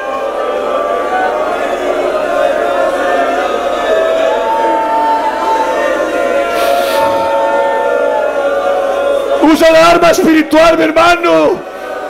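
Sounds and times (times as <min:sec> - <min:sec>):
congregation praying aloud: 0:00.0 - 0:12.0
sustained musical tones: 0:02.7 - 0:09.2.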